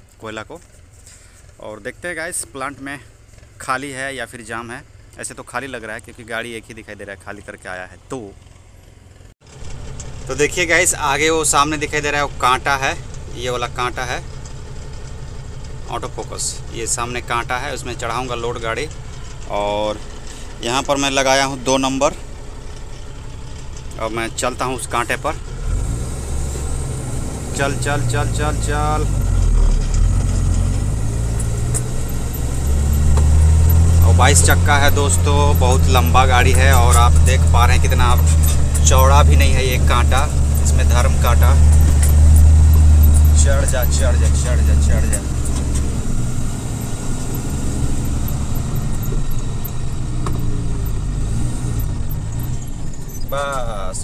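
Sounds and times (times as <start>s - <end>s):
truck diesel engine idling: 0.0s - 54.0s.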